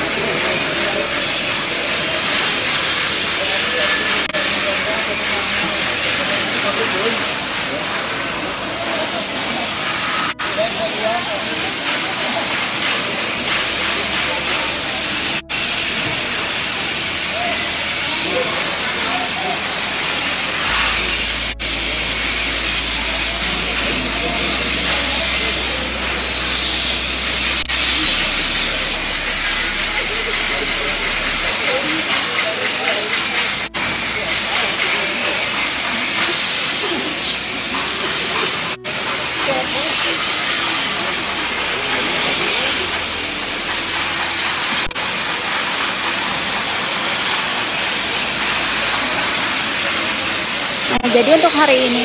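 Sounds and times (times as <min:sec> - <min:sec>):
faint voices: 0:00.0 - 0:52.0
metalworking hiss: 0:00.0 - 0:52.0.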